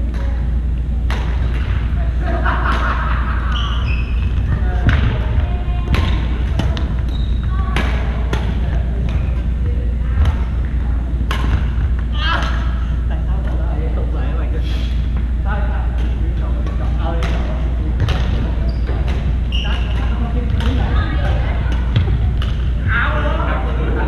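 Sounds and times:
distant players' voices: 0.0s - 24.0s
low hum: 0.0s - 24.0s
racket hitting shuttlecock: 1.1s - 1.8s, 5.9s - 9.4s, 10.2s - 12.8s, 15.9s - 22.8s
sneaker squeaks on wooden court: 3.5s - 9.6s, 16.8s - 22.7s.

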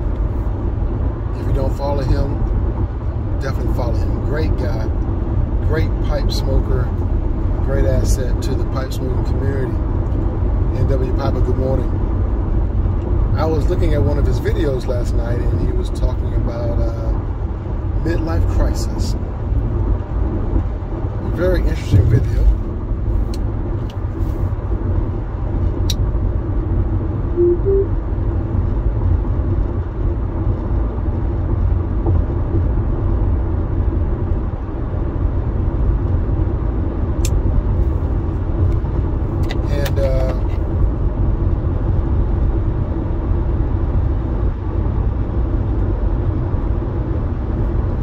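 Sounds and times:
car road and engine noise: 0.0s - 48.0s.

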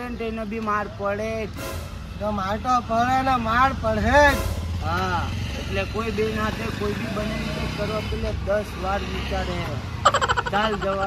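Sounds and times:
men talking animatedly: 0.0s - 11.0s.

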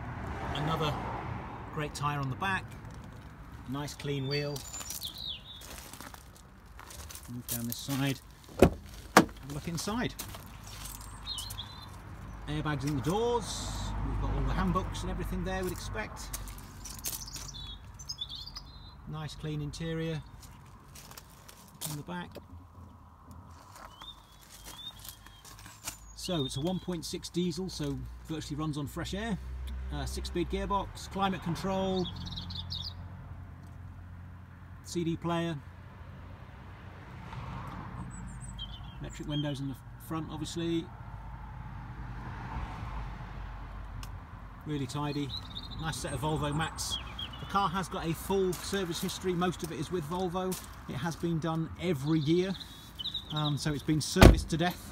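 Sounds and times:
vehicle passing: 0.0s - 7.3s, 8.2s - 18.1s, 35.7s - 39.0s, 40.8s - 51.9s
faint road traffic rumble: 0.0s - 54.9s.

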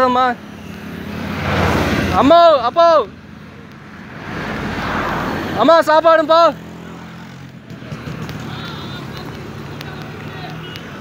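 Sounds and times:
vehicle passing by: 0.0s - 11.0s.

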